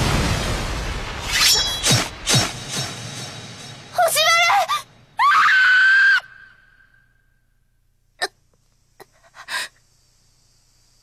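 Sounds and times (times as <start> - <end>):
girl shouting: 4.0 - 6.0
loud high scream: 4.5 - 7.1.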